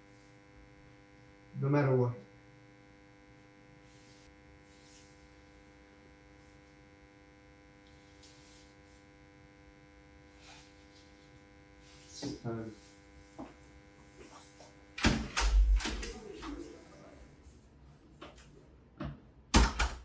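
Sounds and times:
electrical hum: 0:00.0 - 0:20.0.

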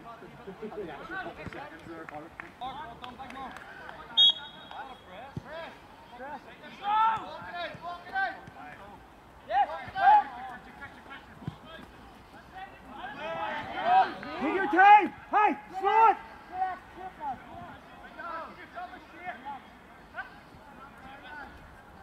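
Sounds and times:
footballers shouting: 0:03.6 - 0:21.6.

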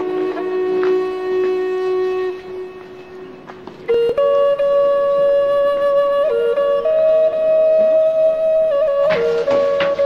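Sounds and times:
wind instrument long note: 0:00.0 - 0:03.3.

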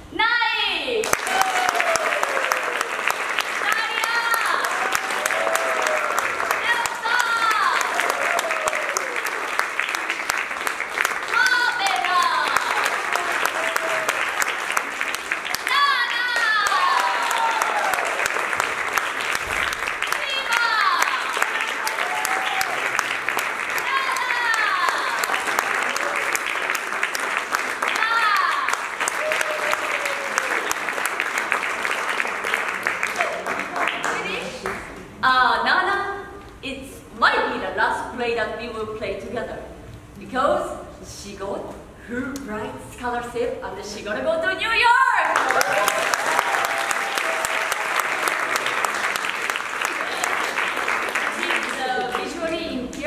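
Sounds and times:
audience applauding: 0:01.0 - 0:35.0, 0:45.2 - 0:52.7
drawn-out cheers: 0:01.1 - 0:03.0, 0:04.0 - 0:09.3, 0:15.5 - 0:18.4, 0:20.4 - 0:23.1, 0:23.8 - 0:26.5, 0:28.0 - 0:30.8, 0:45.3 - 0:48.8.

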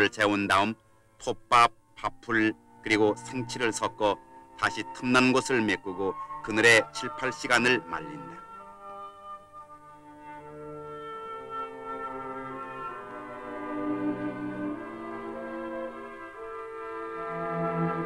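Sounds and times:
music of long held notes: 0:00.0 - 0:18.0.

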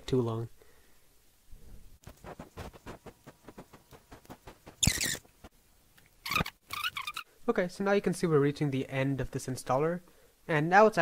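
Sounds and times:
high-pitched squeaky chirp: 0:04.8 - 0:05.3, 0:06.2 - 0:07.3.

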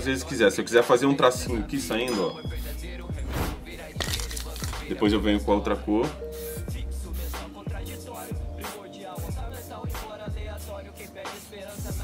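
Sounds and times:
hip hop music: 0:00.0 - 0:12.0
aerosol spray can hissing: 0:06.3 - 0:07.5, 0:10.5 - 0:12.0.

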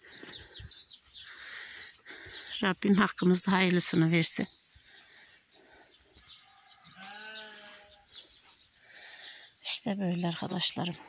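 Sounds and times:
livestock bleating: 0:06.5 - 0:08.1.

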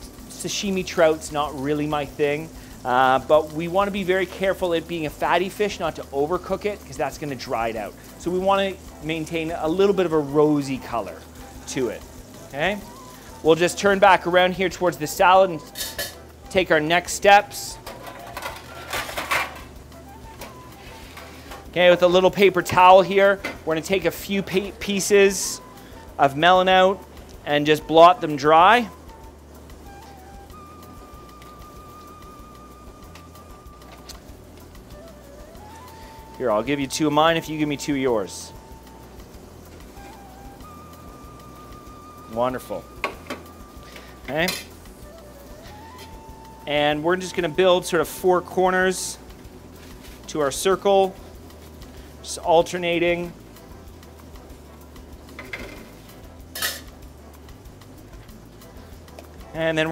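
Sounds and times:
soft background music: 0:00.0 - 0:59.9
dishware and utensils clattering: 0:17.8 - 0:19.7, 0:56.5 - 0:56.9.

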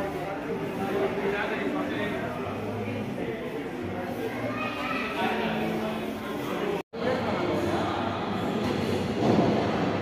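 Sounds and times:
noisy din of indoor hall: 0:00.0 - 0:10.0.

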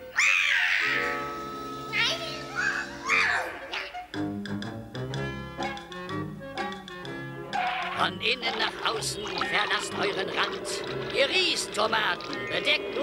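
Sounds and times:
cartoon cat yowling: 0:00.1 - 0:01.0, 0:02.6 - 0:03.6
cartoon orchestral music: 0:07.5 - 0:13.0.

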